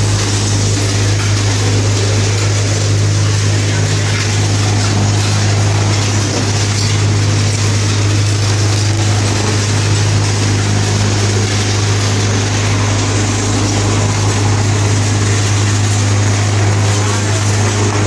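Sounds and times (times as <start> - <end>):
vibrating table humming and buzzing: 0.0 - 18.0.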